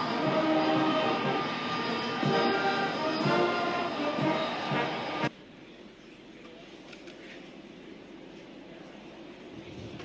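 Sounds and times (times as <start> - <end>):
brass band playing slow chords: 2.2 - 5.3.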